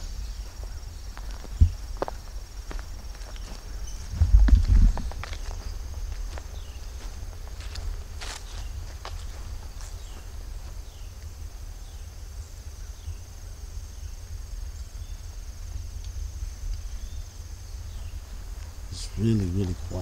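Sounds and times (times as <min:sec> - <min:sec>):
footsteps in grass: 0:00.0 - 0:11.6, 0:17.9 - 0:20.0
insects droning: 0:00.0 - 0:20.0
low microphone rumble: 0:03.8 - 0:08.9.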